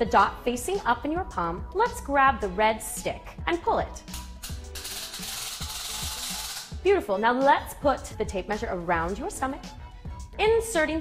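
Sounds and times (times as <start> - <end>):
tape measure pulled out hissing: 4.1 - 6.8.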